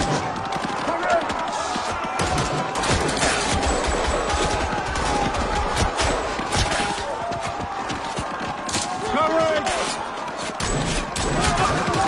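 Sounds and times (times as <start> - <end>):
rifle and machine-gun shots: 2.0 - 6.9, 10.6 - 12.0.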